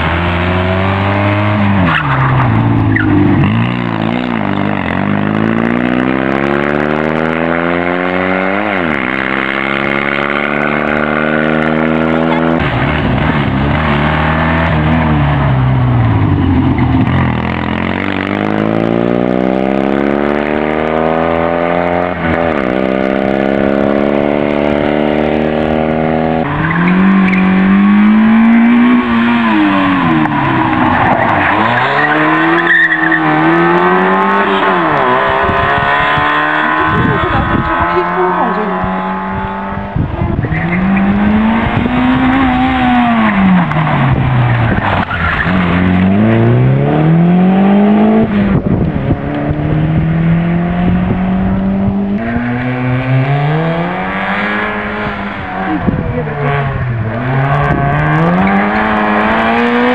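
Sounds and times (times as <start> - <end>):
louder car engine: 0.0 - 59.9
rally car engines revving: 0.0 - 59.9.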